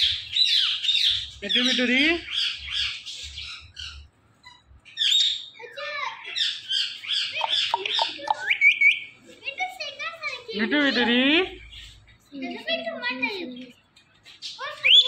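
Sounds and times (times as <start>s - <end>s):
parakeet squawking and chattering: 0.0s - 13.4s, 14.2s - 15.0s.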